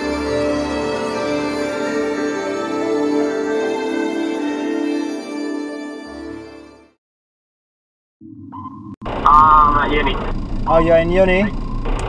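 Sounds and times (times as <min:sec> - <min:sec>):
low hum: 0:08.2 - 0:12.0.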